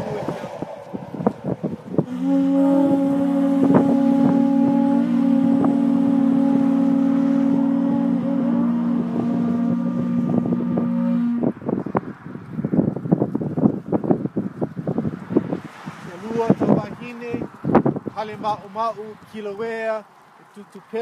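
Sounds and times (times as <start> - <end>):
conch shell trumpets blowing: 0.0 - 11.6
wind buffeting microphone: 0.0 - 20.0.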